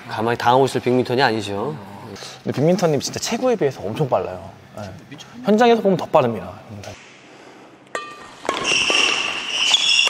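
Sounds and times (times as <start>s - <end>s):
racket hitting shuttlecock: 7.9s - 10.0s
court shoes squeaking: 8.2s - 10.0s.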